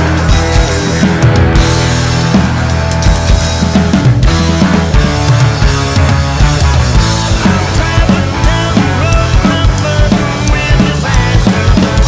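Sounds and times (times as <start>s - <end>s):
drum kit rock beat: 0.0s - 12.0s
rock band recording: 0.0s - 12.0s.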